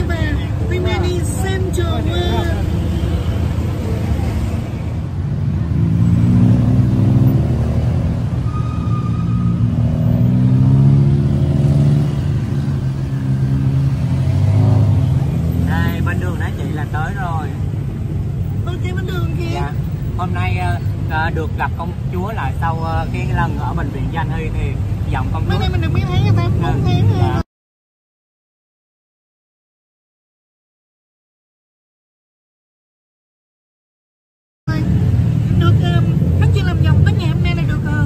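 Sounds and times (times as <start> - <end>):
tuk-tuk engine running: 0.0 - 8.4, 9.5 - 27.4, 34.7 - 38.0.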